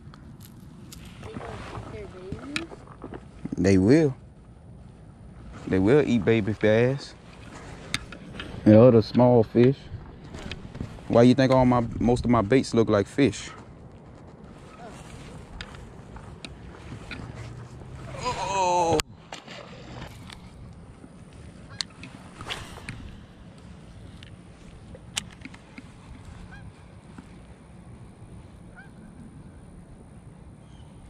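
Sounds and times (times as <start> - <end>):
goose honking: 26.4 - 26.7, 28.7 - 29.0.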